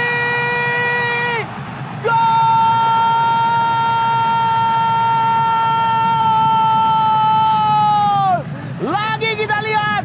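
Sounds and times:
commentator shouting goal: 8.2 - 10.0.

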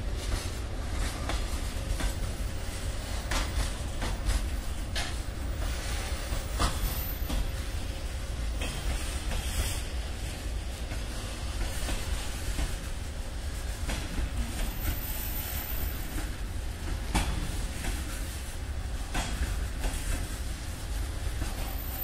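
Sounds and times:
freight train rumbling: 0.0 - 22.0
wheels clacking on rail joints: 0.0 - 22.0.

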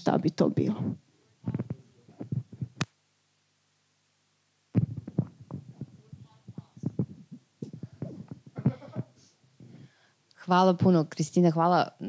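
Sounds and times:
microphone handling thumps: 0.7 - 2.9, 4.7 - 9.9.

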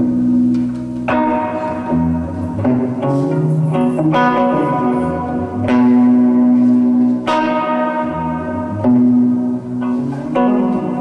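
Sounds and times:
acoustic and electric guitars: 0.0 - 11.0.

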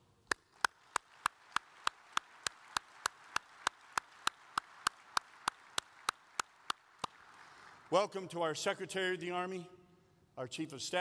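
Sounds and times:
hands clapping close: 0.2 - 7.9
faint audience applause: 0.3 - 8.0.

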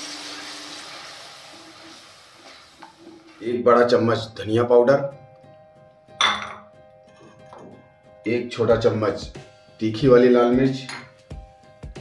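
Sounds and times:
paste sizzling in hot oil: 0.0 - 3.6.

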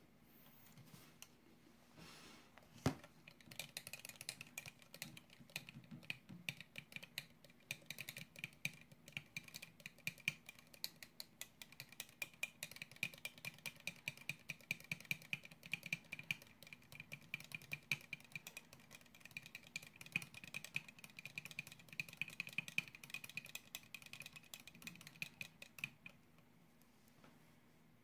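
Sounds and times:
rod clicking against plastic cup: 3.2 - 26.2.

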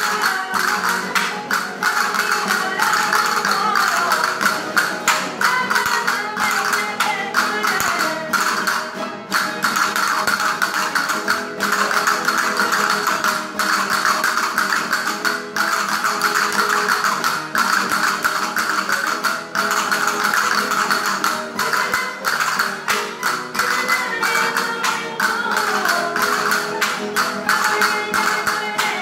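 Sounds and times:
folk string band playing dance tune: 0.0 - 29.0.

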